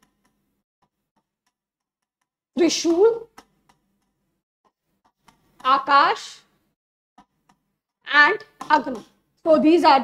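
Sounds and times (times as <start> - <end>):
stylus tapping on touchscreen: 0.0 - 5.8, 7.2 - 9.2.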